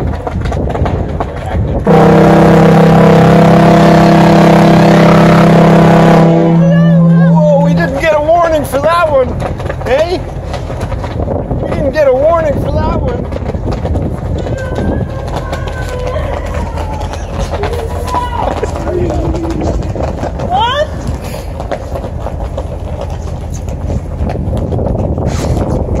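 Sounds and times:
low engine rumble: 0.0 - 26.0
wind on microphone: 0.0 - 26.0
faint voices: 14.4 - 21.1.

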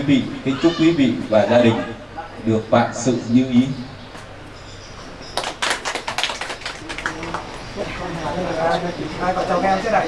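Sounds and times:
small group clapping: 5.3 - 7.9.

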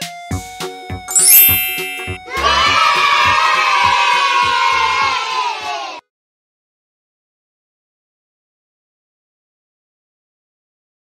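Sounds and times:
children cheering: 2.2 - 6.0.

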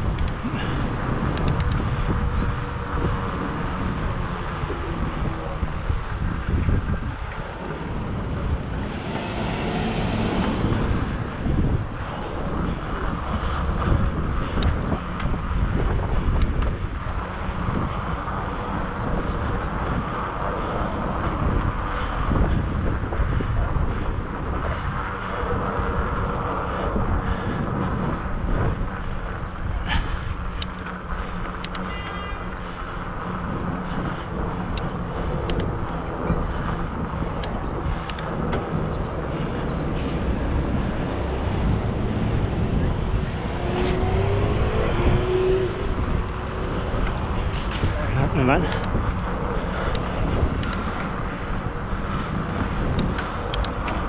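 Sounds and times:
cars driving past: 0.0 - 14.6, 31.6 - 54.0
road and tyre rumble: 0.0 - 54.0
wind rushing over microphone: 0.0 - 54.0.

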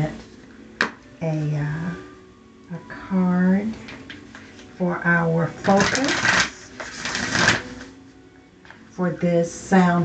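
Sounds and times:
cards being shuffled: 5.6 - 8.0.

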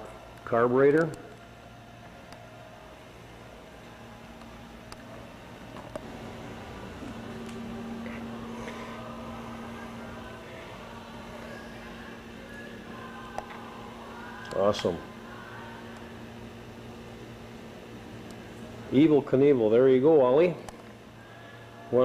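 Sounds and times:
indoor hall hum: 0.0 - 22.0.

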